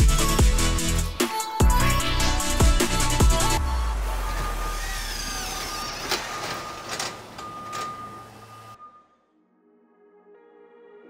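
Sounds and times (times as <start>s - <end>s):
noisy electronic wash: 1.8s - 6.8s.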